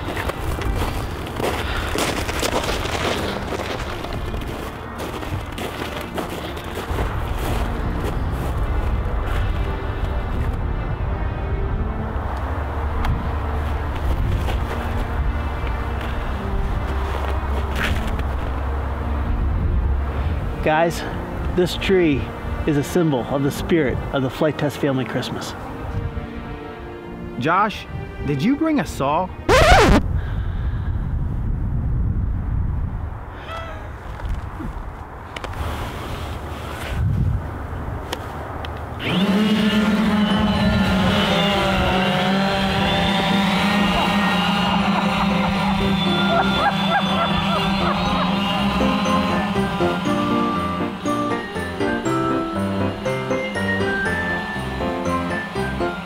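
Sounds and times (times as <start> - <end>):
drone motors humming: 39.0 - 52.4.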